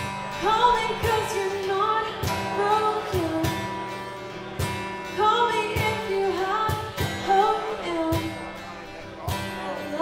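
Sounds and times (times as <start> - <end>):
strummed acoustic guitar: 0.0 - 10.0
woman singing: 0.3 - 3.9, 5.1 - 8.4.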